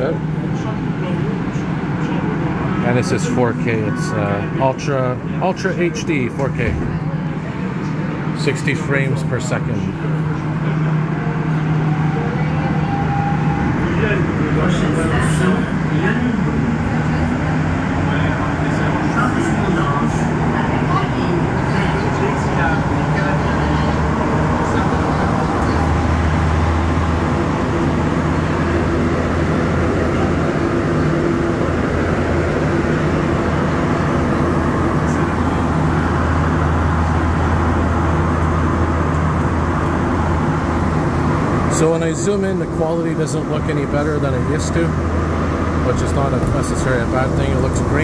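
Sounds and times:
train motor whine: 0.0s - 48.0s
train rumbling in tunnel: 0.0s - 48.0s.

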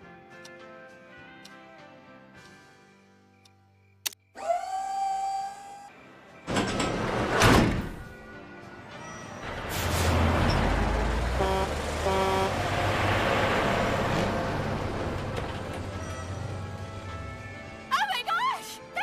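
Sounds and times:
truck engine rumbling: 9.4s - 17.9s.

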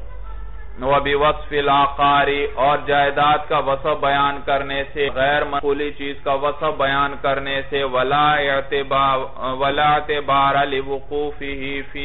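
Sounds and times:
man chanting: 0.8s - 12.0s.

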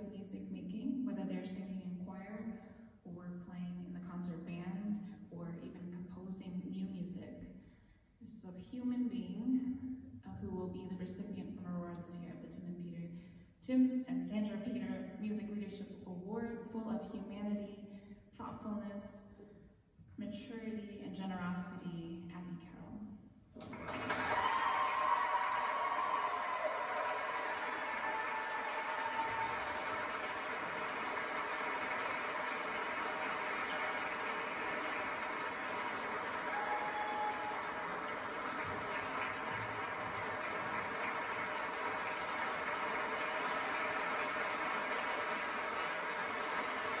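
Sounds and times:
audience applauding: 23.6s - 47.0s.

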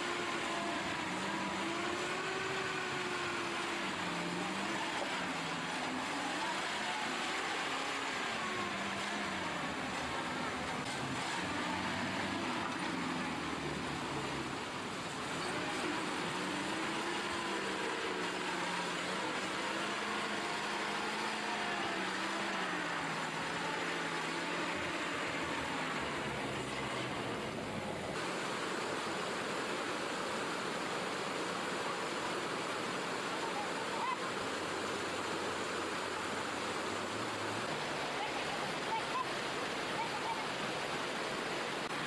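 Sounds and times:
fast river rushing: 0.0s - 42.0s
heavy truck engine labouring: 0.0s - 42.0s.

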